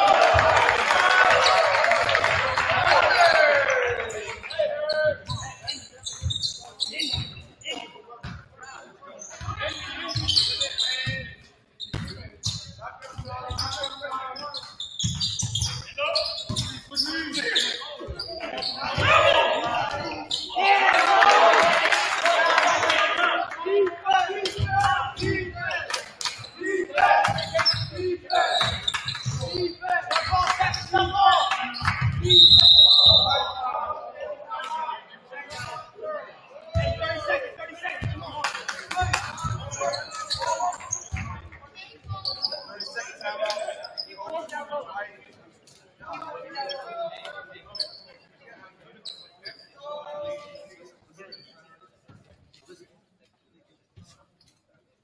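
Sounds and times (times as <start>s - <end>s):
echoing voices: 16.0s - 32.4s.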